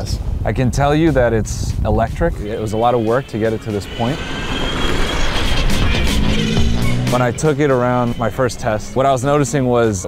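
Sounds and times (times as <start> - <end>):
faint high whine: 2.3 - 10.0
tyre and drivetrain rush: 3.1 - 9.7.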